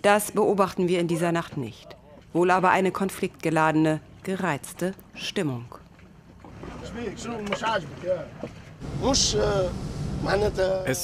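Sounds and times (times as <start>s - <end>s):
boat engines rumbling: 1.4s - 11.0s
men speaking: 6.6s - 11.0s.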